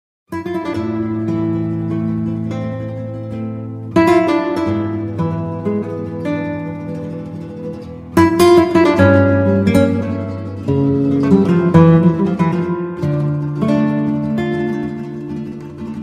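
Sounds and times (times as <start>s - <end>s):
acoustic guitar music: 0.3s - 16.0s.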